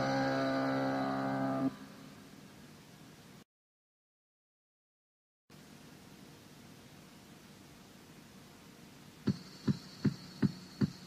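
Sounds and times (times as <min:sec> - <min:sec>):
cassette tape hiss: 0:05.5 - 0:11.0.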